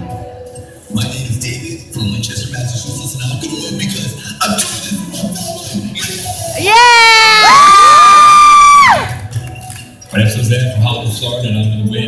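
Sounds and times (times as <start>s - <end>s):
voices cheering yeah: 6.6s - 9.2s.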